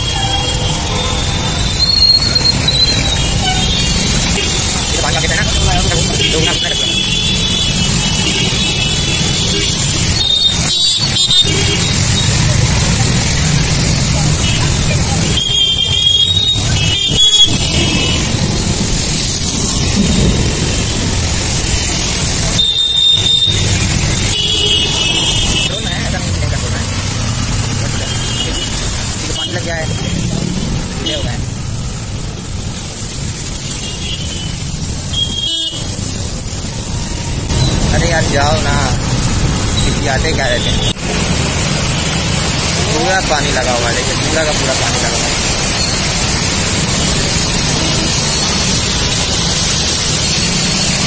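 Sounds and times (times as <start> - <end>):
road and wind noise: 0.0 - 51.0.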